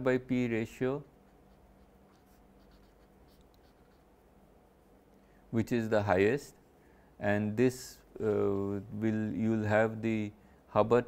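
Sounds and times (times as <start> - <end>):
faint steady hum: 0.0 - 11.0
marker writing on paper: 1.2 - 4.1.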